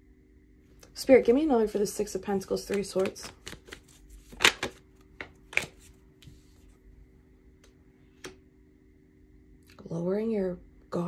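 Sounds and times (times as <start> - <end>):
faint steady hum: 0.0 - 11.0
cards snapping and tapping: 2.6 - 5.9.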